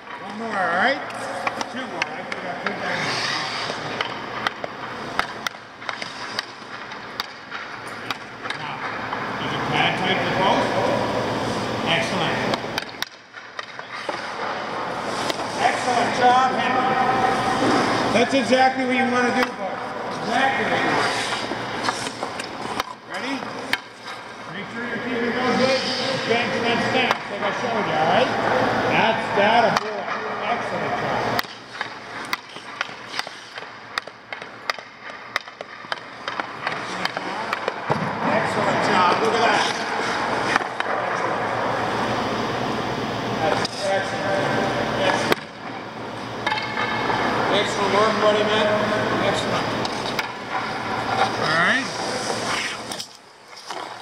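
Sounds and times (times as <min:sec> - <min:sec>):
skate blades scraping ice: 0:00.3 - 0:09.1, 0:12.7 - 0:16.6, 0:17.2 - 0:27.6, 0:30.6 - 0:42.3, 0:46.5 - 0:54.0.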